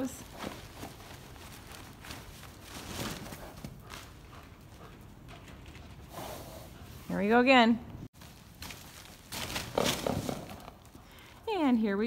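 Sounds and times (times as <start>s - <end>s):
plastic tarp rustling: 8.2s - 10.6s
horse hoof thuds: 8.6s - 10.9s.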